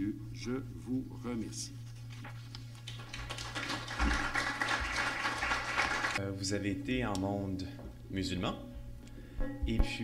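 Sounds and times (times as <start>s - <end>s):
audience applauding: 2.9s - 6.2s.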